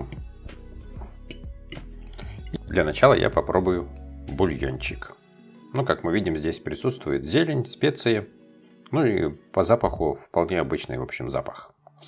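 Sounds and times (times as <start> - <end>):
soft background music: 0.0 - 12.0
metal fork clicking on glass bowl: 1.3 - 1.9.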